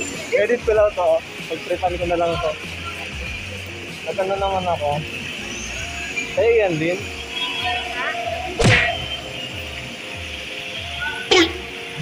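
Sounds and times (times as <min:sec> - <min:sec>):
people in background: 0:00.0 - 0:12.0
traffic: 0:00.0 - 0:12.0.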